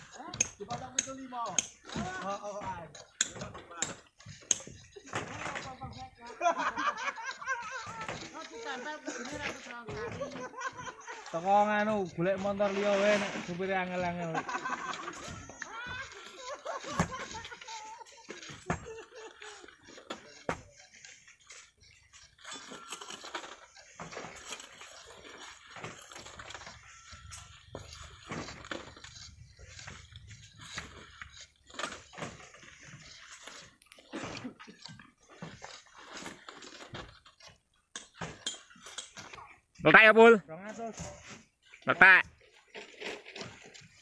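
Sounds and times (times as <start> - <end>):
pole knocking and scraping rock: 0.0 - 39.8, 40.7 - 44.0.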